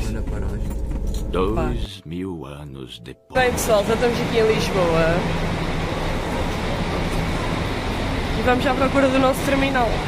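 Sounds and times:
bus engines running: 0:03.4 - 0:10.0.

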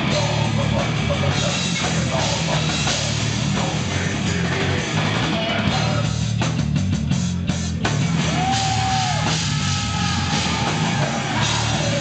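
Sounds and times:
distorted guitar and bass: 0:00.0 - 0:12.0
fast drumming: 0:00.0 - 0:12.0.

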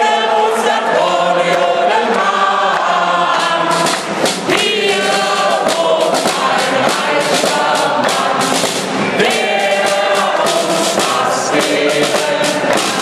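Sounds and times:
men and women singing in chorus: 0:00.0 - 0:13.0.

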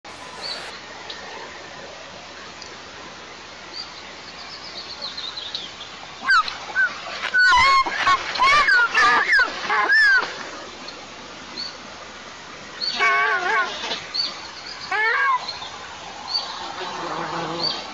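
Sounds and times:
eagles squealing calls: 0:00.1 - 0:00.7
songbird chirps: 0:00.1 - 0:00.7.

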